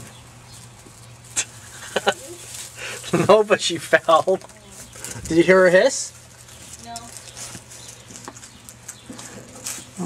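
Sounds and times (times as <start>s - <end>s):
turtle crawling through dry straw: 0.0s - 10.0s.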